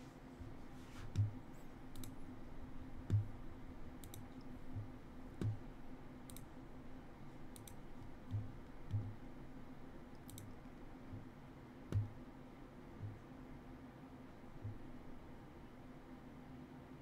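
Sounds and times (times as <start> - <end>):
faint steady hum: 0.0 - 17.0
computer mouse and keyboard clicks: 1.9 - 2.2, 4.0 - 5.6, 6.2 - 6.5, 7.5 - 9.2, 10.1 - 10.7.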